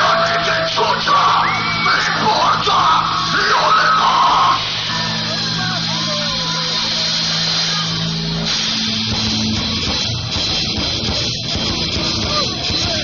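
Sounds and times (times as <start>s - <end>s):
people shouting and yelling: 0.0s - 13.0s.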